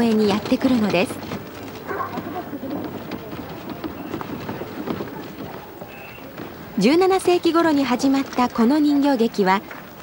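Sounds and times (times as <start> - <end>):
footsteps on gravel: 0.0 - 6.7
cart wheels crunching over gravel: 0.0 - 10.0.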